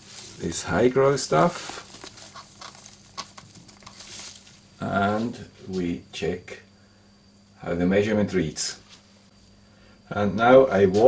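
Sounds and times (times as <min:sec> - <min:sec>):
rustling of leaves and gloves: 0:00.0 - 0:05.4.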